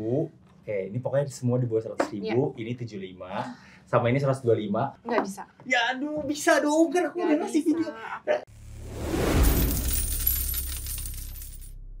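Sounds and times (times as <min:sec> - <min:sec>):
coins clinking and jingling: 0:09.4 - 0:11.7.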